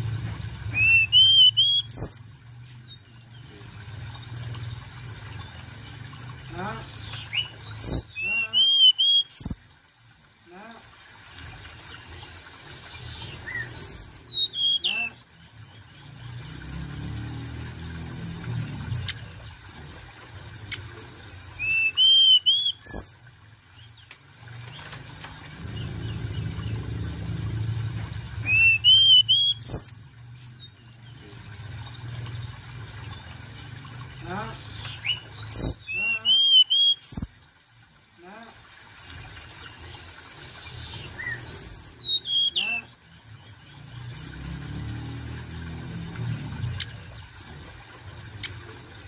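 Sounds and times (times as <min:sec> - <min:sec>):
bird singing high whistles: 0:00.8 - 0:02.2, 0:07.8 - 0:09.6, 0:21.6 - 0:23.1, 0:28.5 - 0:30.0, 0:41.2 - 0:42.6
low background rumble: 0:25.5 - 0:28.5.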